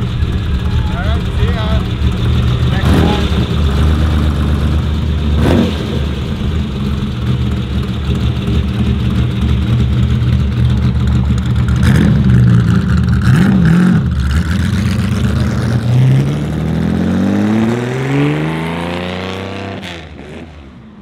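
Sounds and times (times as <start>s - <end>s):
car engine pulling away: 0.0s - 21.0s.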